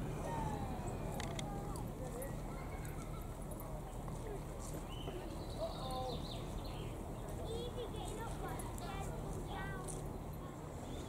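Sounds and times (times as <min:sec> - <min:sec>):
distant voices and calls: 0:00.0 - 0:11.0.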